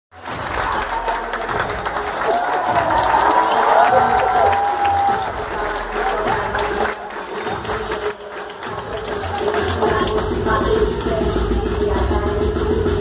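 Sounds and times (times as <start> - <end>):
audience cheering and applauding: 0.2 - 11.2
music with a beat: 0.2 - 13.0
high whooping shouts: 2.2 - 5.3.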